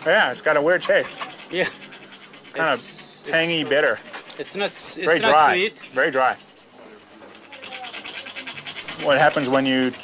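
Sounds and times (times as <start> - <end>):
scratchy rustling close to microphone: 0.5 - 10.0.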